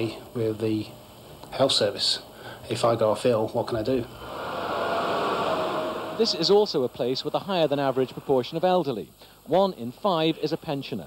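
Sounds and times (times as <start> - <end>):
faint steady hum: 0.0 - 11.0
traffic noise: 4.1 - 8.7.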